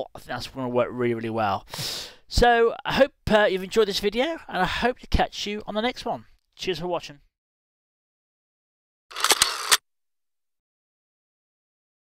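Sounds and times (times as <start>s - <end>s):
sharp clicks: 9.1s - 9.8s.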